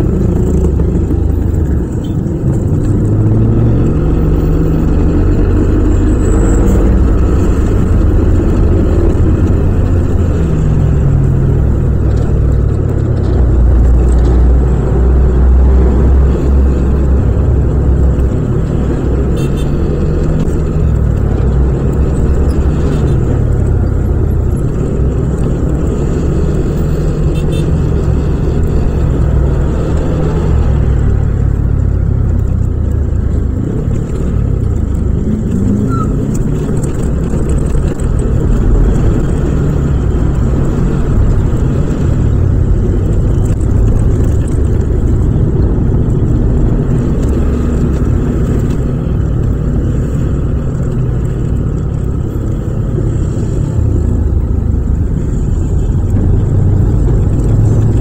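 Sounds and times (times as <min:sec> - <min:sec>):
traffic engines: 0:00.0 - 0:58.0.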